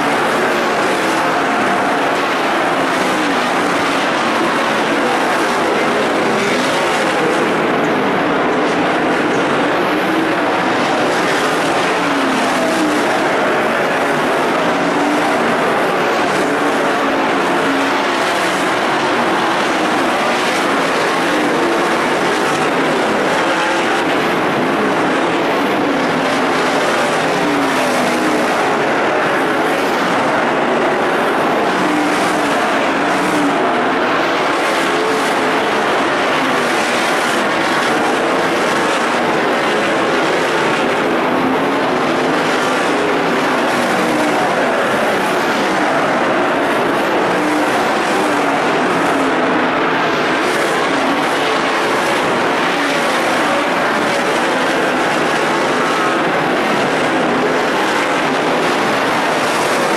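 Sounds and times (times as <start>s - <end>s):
racing car engines: 0.0s - 59.9s.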